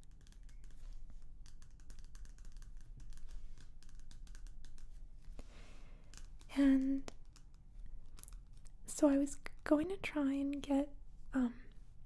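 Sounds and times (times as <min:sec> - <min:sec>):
fingers tapping on paper: 0:00.0 - 0:05.0.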